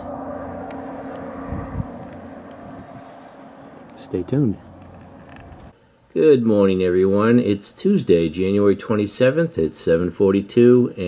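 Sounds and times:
low bump: 0.0 - 5.7
low mechanical rumble: 0.0 - 6.1.

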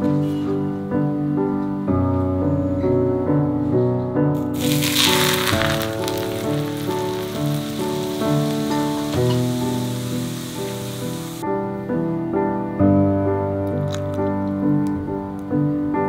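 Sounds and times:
background piano music: 0.0 - 16.0
hot oil sizzling: 4.4 - 11.4.

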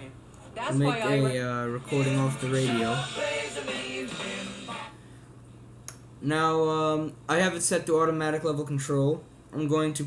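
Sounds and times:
low steady hum: 0.0 - 10.0
music from radio speaker: 0.4 - 5.0.

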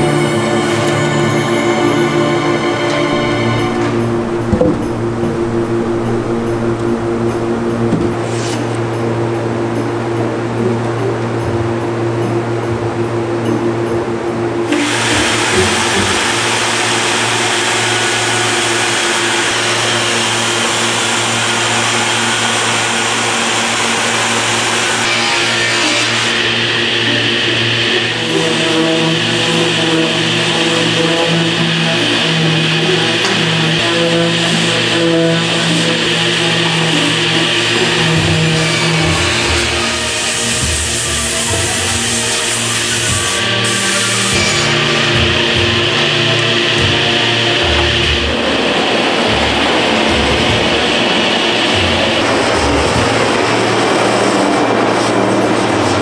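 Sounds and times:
background music: 0.0 - 56.0
angle grinder sanding wood: 14.7 - 56.0.

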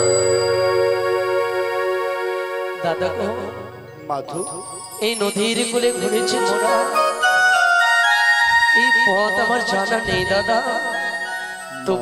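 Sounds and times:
instrument melody of held notes: 0.0 - 12.0.

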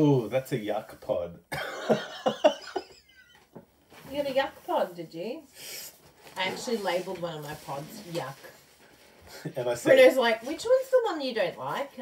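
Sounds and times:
person laughing: 1.6 - 3.4.

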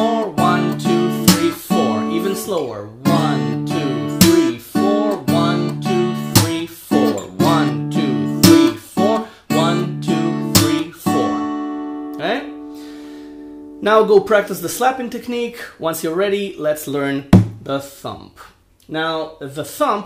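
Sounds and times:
fingerstyle acoustic guitar: 0.0 - 13.8
palm slap on guitar strings: 1.3 - 1.6, 4.2 - 4.5, 6.4 - 6.6, 10.6 - 10.8, 17.4 - 17.6.

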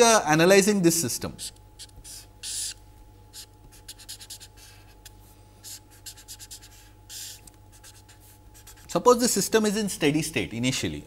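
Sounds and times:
steady low hum: 0.0 - 11.0
marker drawing on paper: 1.4 - 9.0.

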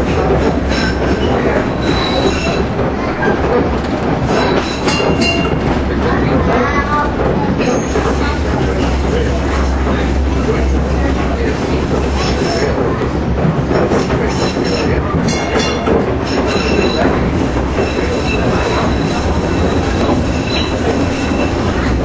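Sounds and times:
rumble of wheels on rail: 0.0 - 22.0
high wheel squeal: 0.7 - 2.7, 14.4 - 21.9.

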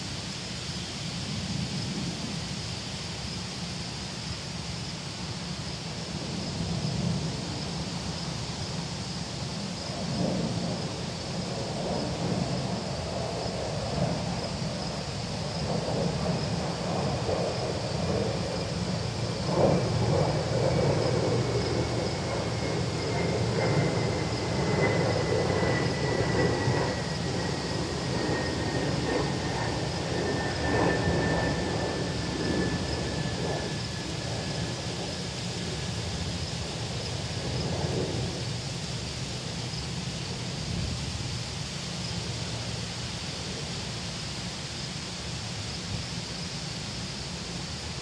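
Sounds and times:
wind gusting through trees: 0.0 - 48.0
wind rumbling on microphone: 0.0 - 48.0.

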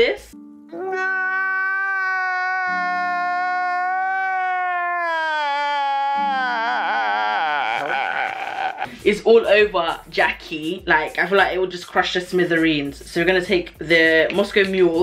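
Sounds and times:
background music chords: 0.0 - 1.1, 5.9 - 15.0
man crying and sobbing: 0.7 - 9.0.

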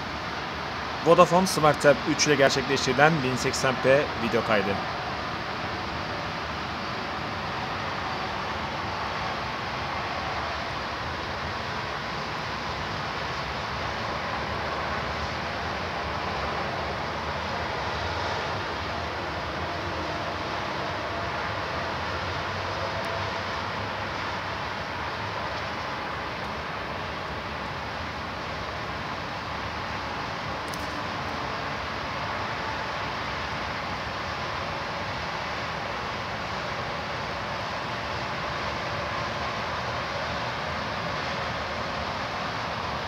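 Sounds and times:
distant traffic roar: 0.0 - 43.0.

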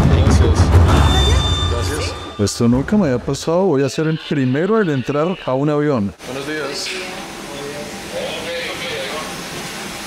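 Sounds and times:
muffled voices: 0.0 - 9.5.

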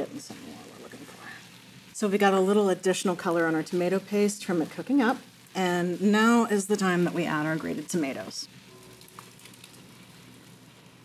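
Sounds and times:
tomato paste sizzling: 0.0 - 11.0.

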